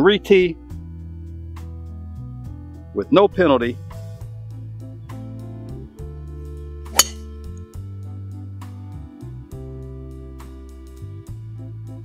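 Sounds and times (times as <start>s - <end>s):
golf driver striking ball: 7.0s - 7.3s.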